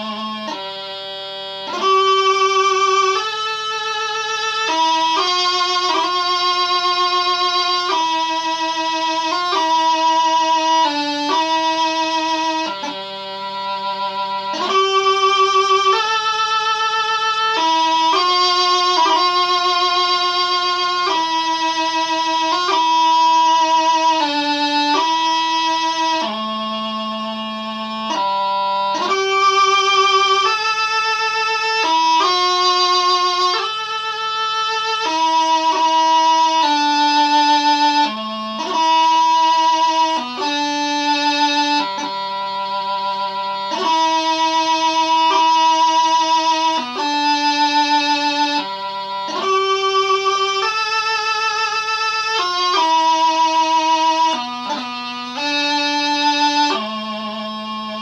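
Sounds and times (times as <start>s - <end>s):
bagpipe practice chanter melody: 0.0s - 58.0s.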